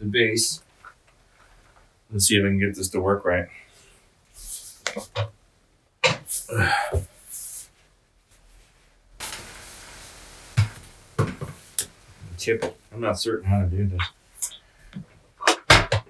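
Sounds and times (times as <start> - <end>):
breathy vocal sound: 6.5 - 7.6
chair parts knocking and clicking: 15.4 - 16.0.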